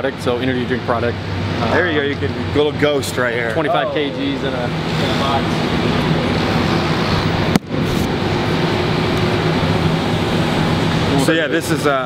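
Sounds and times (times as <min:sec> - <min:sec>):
ventilation: 0:00.0 - 0:12.0
factory machinery hum: 0:02.4 - 0:12.0
low steady tones: 0:03.3 - 0:06.5.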